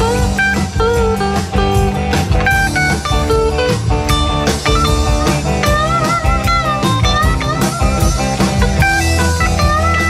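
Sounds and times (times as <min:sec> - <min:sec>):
lead guitar bending notes: 0:00.0 - 0:10.0
live rock band playing: 0:00.0 - 0:10.0.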